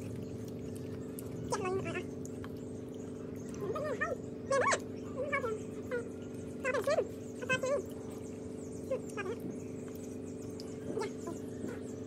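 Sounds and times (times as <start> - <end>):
small animal whining: 0.0 - 12.0
steady low hum: 0.0 - 12.0.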